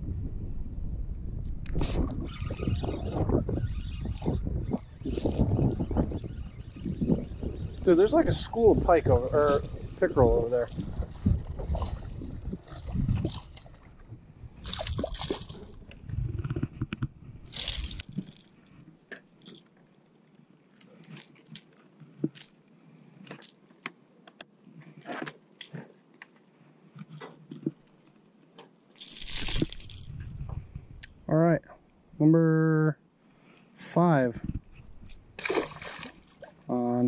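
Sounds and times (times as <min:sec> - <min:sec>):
splashing water: 0:10.7 - 0:15.9, 0:35.4 - 0:36.7.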